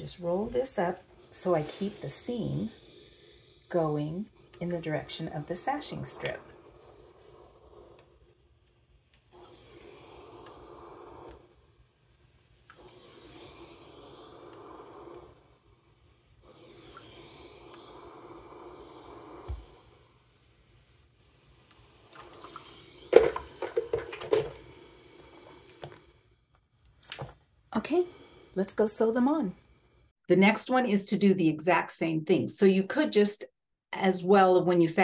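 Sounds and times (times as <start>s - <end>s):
steam iron pushed over fabric: 0.1s - 2.8s, 3.7s - 8.1s, 12.7s - 15.3s.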